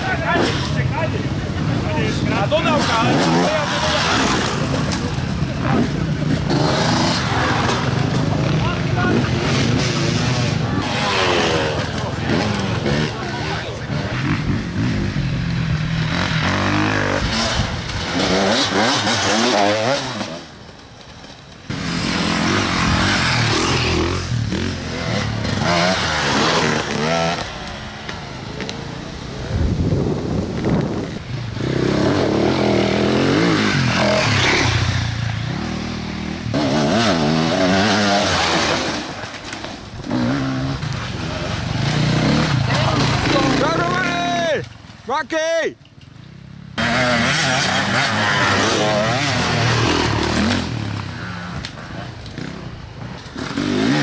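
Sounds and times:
motorcycle engines revving: 0:00.0 - 0:54.0.

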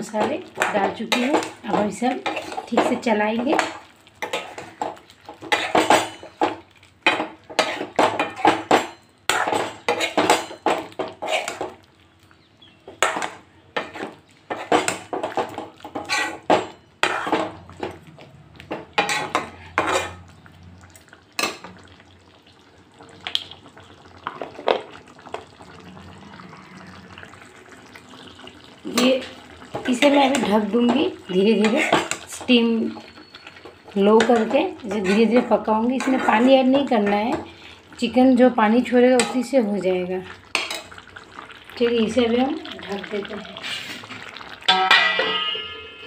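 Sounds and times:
metal ladle scraping a pot: 0:02.2 - 0:02.7, 0:05.4 - 0:06.4, 0:09.3 - 0:11.7, 0:13.0 - 0:17.6, 0:19.0 - 0:20.2, 0:31.3 - 0:37.4, 0:43.6 - 0:44.1.

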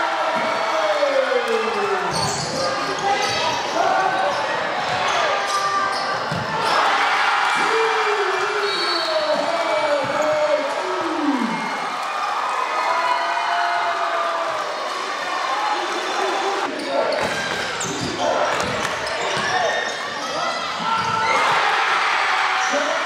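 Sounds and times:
sneakers squeaking: 0:01.7 - 0:06.9, 0:16.7 - 0:21.6.

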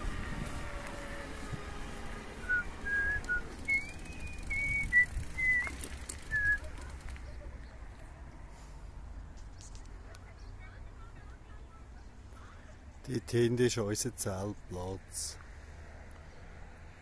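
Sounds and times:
person whistling a tune: 0:02.5 - 0:06.7.

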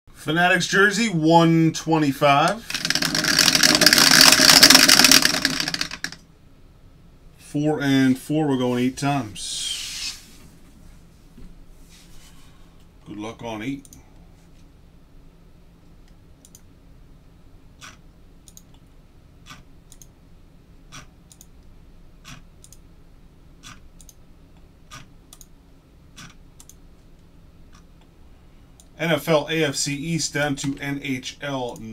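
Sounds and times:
faint steady hum: 0:00.1 - 0:31.9
motor hum: 0:02.5 - 0:06.2
dice rattling in plastic dome: 0:02.6 - 0:06.2
computer mouse clicking: 0:16.4 - 0:16.7, 0:17.8 - 0:18.8, 0:19.4 - 0:20.1, 0:20.9 - 0:21.6, 0:22.2 - 0:22.8, 0:23.6 - 0:24.2, 0:24.9 - 0:25.5, 0:26.2 - 0:26.8.

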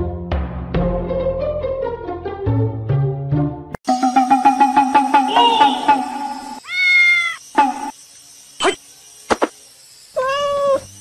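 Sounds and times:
cat meowing: 0:06.6 - 0:07.4, 0:10.2 - 0:10.9.

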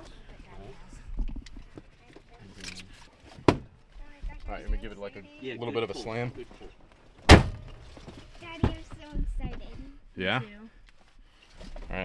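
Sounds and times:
dull thump: 0:07.2 - 0:09.7
handling knocks and rustles: 0:07.2 - 0:09.9.

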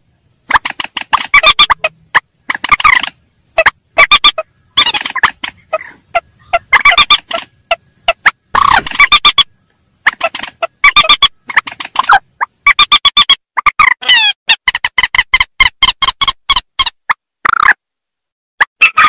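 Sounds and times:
rails calling: 0:00.0 - 0:13.1.

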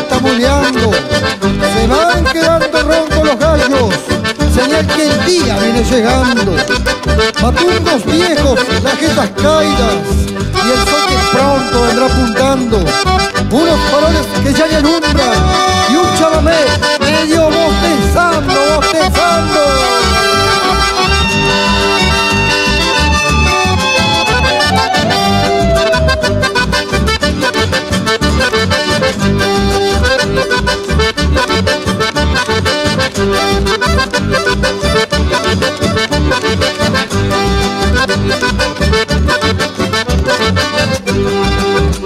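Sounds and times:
button accordions playing melody: 0:00.0 - 0:42.0
guitars: 0:00.0 - 0:42.0.

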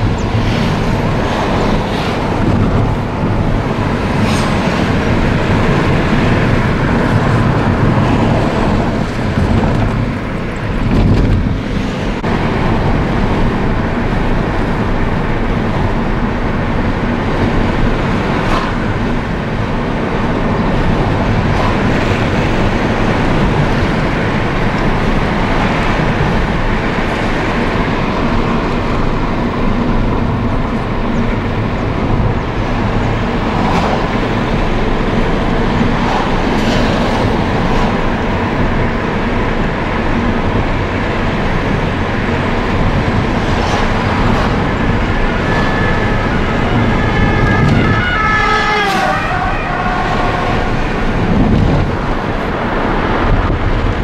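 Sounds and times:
car road noise rumble: 0:00.0 - 0:54.0.

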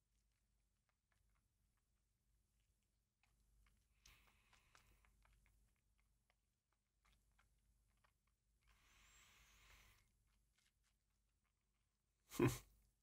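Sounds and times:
soft breath out: 0:08.7 - 0:10.1.

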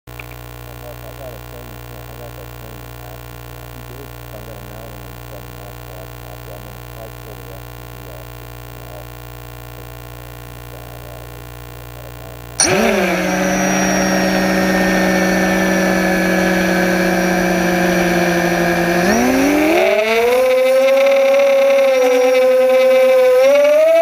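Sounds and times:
electrical hum: 0:00.1 - 0:24.0.

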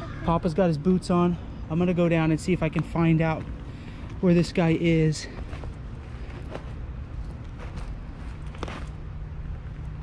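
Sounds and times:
steady low rumble: 0:00.0 - 0:10.0
footsteps crunching on dry leaves: 0:05.0 - 0:09.0.

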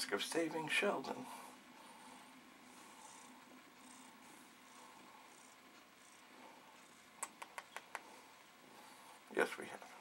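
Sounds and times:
cat purring faintly: 0:00.0 - 0:10.0
soft breathy puffs: 0:01.2 - 0:07.1, 0:07.9 - 0:09.3.

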